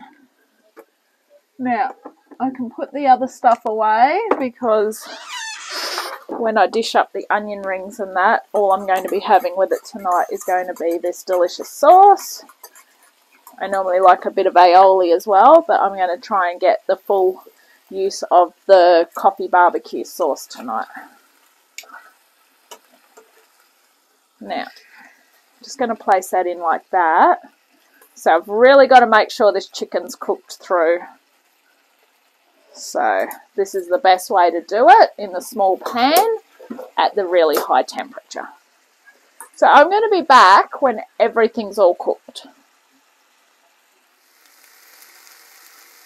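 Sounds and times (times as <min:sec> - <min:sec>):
faint sizzle from pan: 0:00.0 - 0:46.0.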